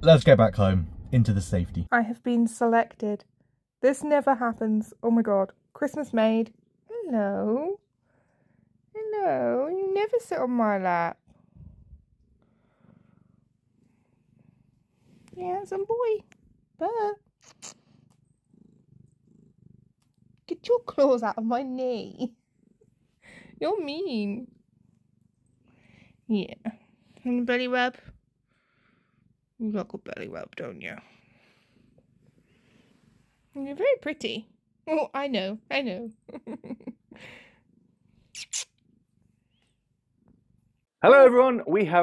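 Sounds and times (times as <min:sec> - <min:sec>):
cat purring: 0:00.0 - 0:41.0
breathy puffs: 0:23.2 - 0:23.6.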